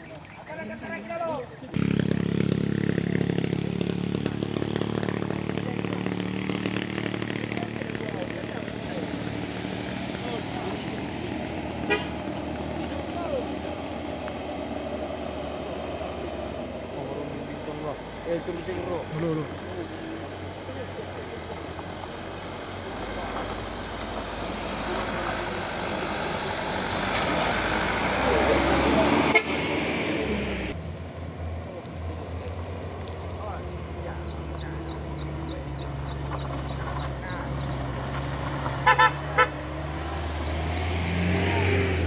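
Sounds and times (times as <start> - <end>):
minibus engine droning: 0.8 - 42.0
truck engine labouring: 1.6 - 42.0
short horn toots: 11.8 - 12.2, 38.8 - 39.6.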